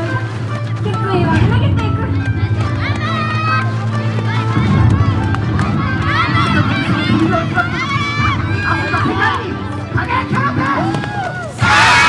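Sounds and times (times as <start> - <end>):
people shouting: 10.9 - 12.0.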